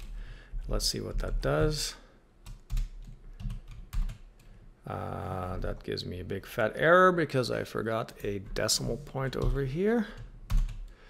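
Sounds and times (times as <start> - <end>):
computer keyboard keystrokes: 2.4 - 4.5, 10.2 - 10.9.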